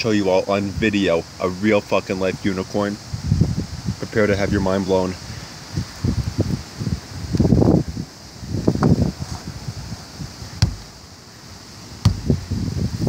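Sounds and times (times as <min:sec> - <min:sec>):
wind noise on microphone: 0:02.2 - 0:11.1, 0:11.9 - 0:13.0
sharp knock: 0:10.6 - 0:11.0, 0:12.0 - 0:12.4.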